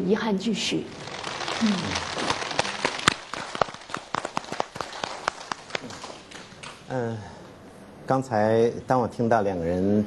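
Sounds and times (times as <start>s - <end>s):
audience hand claps: 0.9s - 6.9s.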